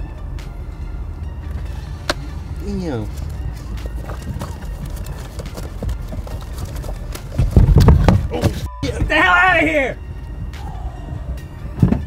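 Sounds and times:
items handled in car trunk: 0:01.5 - 0:09.3
loud low rumbling jostle: 0:02.3 - 0:08.7.

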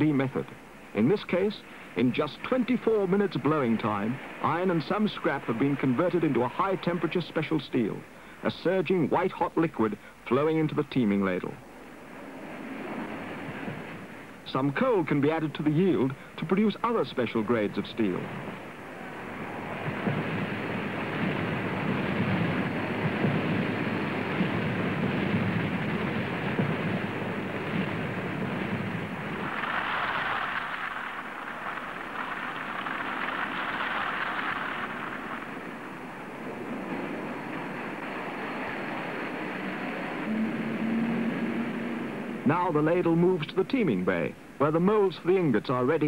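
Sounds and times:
molten steel pouring rumble: 0:00.8 - 0:08.8, 0:12.1 - 0:43.5.

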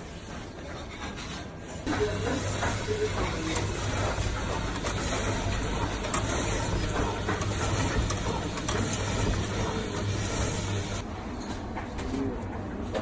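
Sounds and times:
meat slicer blade cutting: 0:01.9 - 0:11.0
motor hum: 0:01.9 - 0:11.0.

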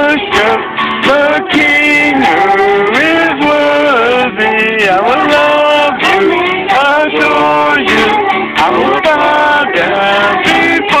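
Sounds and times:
acoustic guitar: 0:00.0 - 0:11.0
man singing: 0:00.0 - 0:11.0
people singing a worship song: 0:00.0 - 0:11.0.

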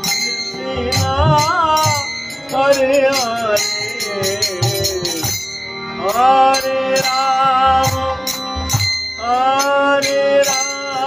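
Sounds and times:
man singing a chant: 0:00.0 - 0:05.4, 0:06.0 - 0:08.4, 0:09.2 - 0:11.0
harmonium: 0:00.0 - 0:11.0
jingling percussion beat: 0:00.0 - 0:11.0.

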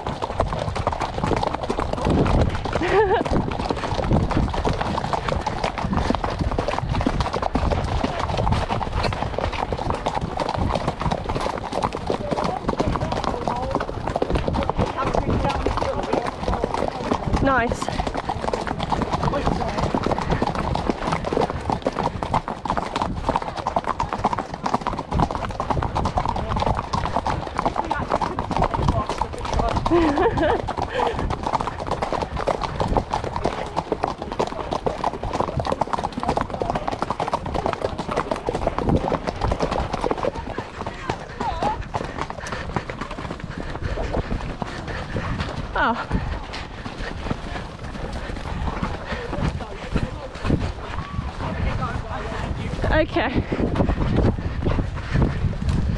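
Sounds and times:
horse hooves clip-clopping on mud: 0:00.0 - 0:55.9.

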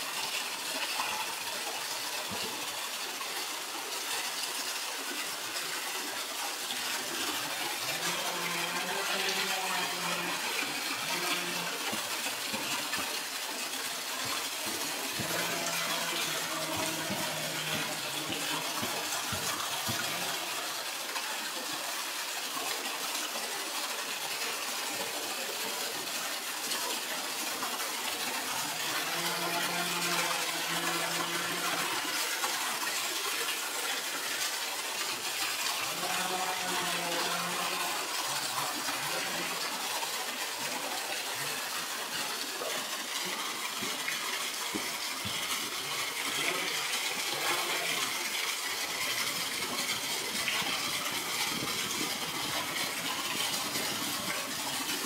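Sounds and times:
water gushing into a pool: 0:00.0 - 0:55.0.

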